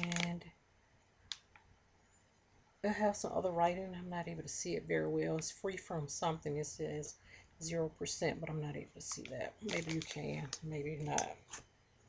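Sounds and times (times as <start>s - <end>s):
plastic packet clicks: 0.0s - 0.3s, 1.3s - 1.6s, 9.1s - 11.6s.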